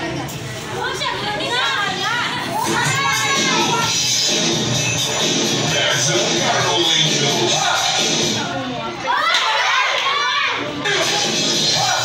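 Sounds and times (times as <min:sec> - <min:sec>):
children chattering and calling out: 0:00.0 - 0:04.3, 0:05.0 - 0:12.0.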